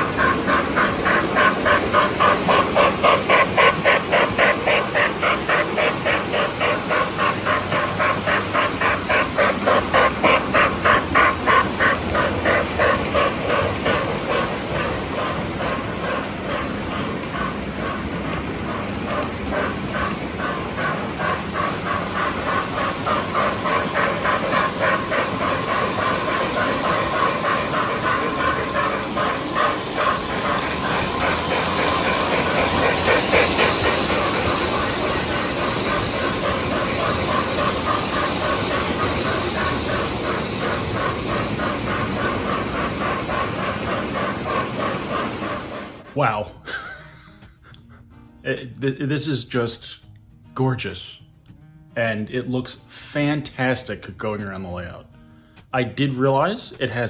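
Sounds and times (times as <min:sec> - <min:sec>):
steam chuff with hiss: 0:00.0 - 0:47.6
toy train running noise: 0:00.0 - 0:47.8.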